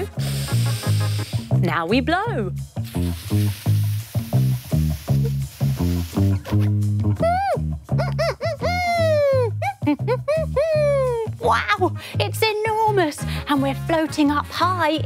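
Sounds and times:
breathy rush of blown air: 0:00.0 - 0:01.6
bouncy children's music: 0:05.9 - 0:15.0.

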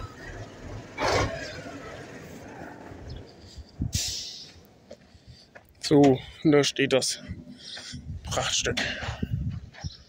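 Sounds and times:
truck engine idling: 0:00.0 - 0:08.2.

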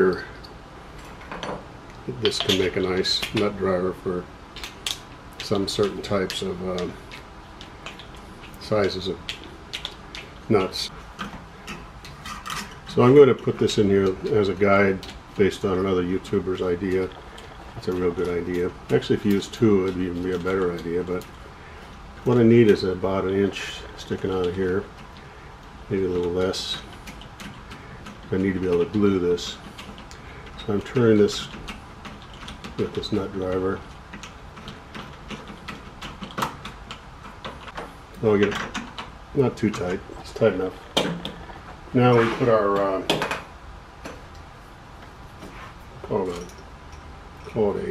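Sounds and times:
light clicks and taps on pipe: 0:01.9 - 0:03.6, 0:04.6 - 0:10.5, 0:11.2 - 0:40.4.

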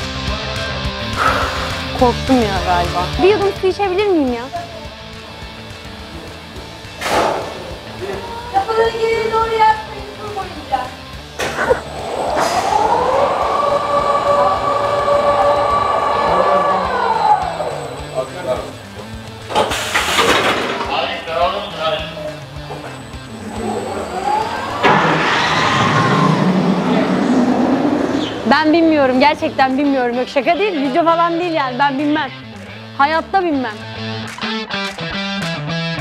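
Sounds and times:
motor whine: 0:01.2 - 0:31.5
roller coaster train rushing past: 0:07.5 - 0:31.3.

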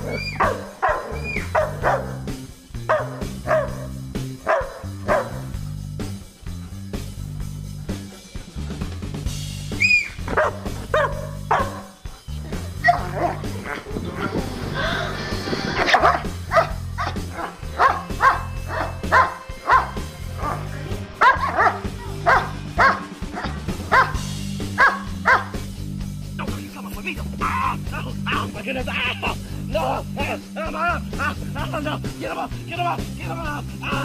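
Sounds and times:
dog barking: 0:00.0 - 0:02.3, 0:02.9 - 0:05.5, 0:10.0 - 0:12.0, 0:12.8 - 0:13.4, 0:15.9 - 0:24.2, 0:24.8 - 0:25.6
background music: 0:00.0 - 0:34.0.

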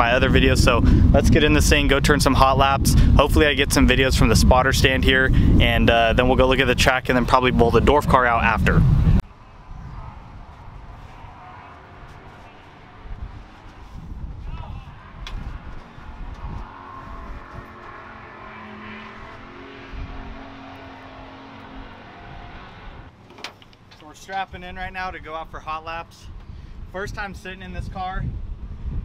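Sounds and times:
race car engines rumbling: 0:00.0 - 0:23.2.

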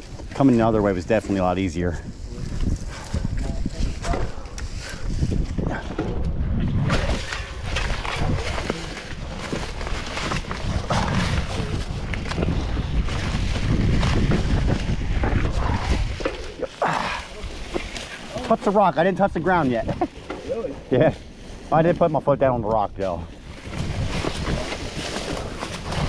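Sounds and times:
bike rattling: 0:00.0 - 0:26.0
wind rumble on microphone: 0:00.0 - 0:26.0
bike tyres knocking over rocks: 0:06.8 - 0:16.8
tyres crunching dry leaves: 0:07.0 - 0:26.0.

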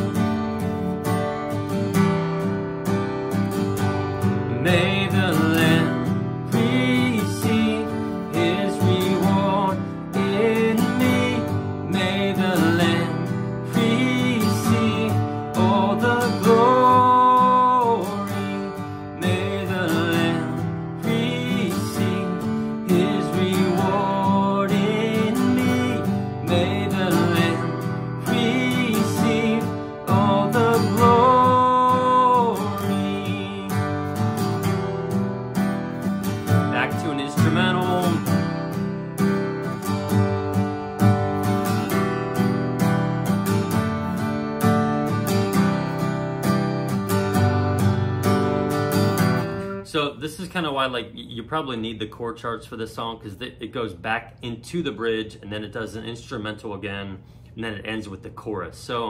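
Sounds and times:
acoustic guitar strumming: 0:00.0 - 0:51.0
man singing: 0:04.5 - 0:34.3, 0:36.5 - 0:38.4.

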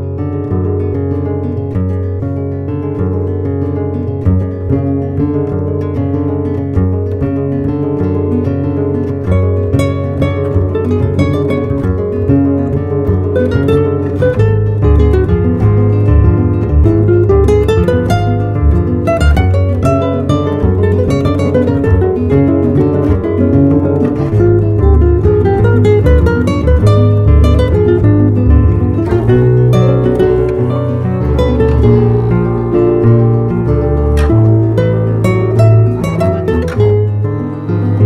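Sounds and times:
plucked guitar melody: 0:00.0 - 0:38.0.

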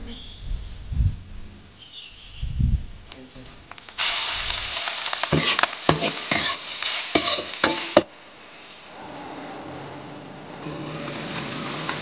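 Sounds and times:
food sizzling in hot oil: 0:03.9 - 0:08.8
spatula scraping a wok: 0:04.7 - 0:08.1, 0:10.5 - 0:12.0.

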